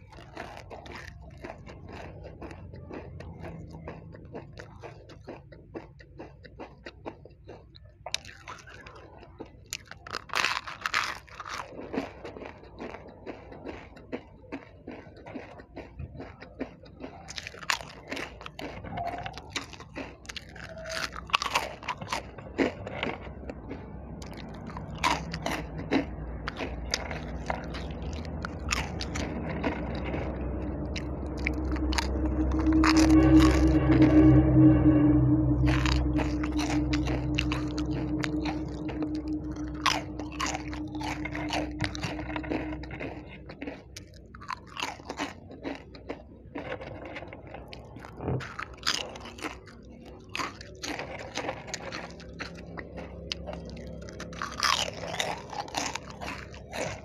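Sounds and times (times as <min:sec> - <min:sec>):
crunchy chewing of chips: 0:00.0 - 0:33.9, 0:35.6 - 0:57.0
low hum: 0:23.1 - 0:44.4, 0:49.9 - 0:57.0.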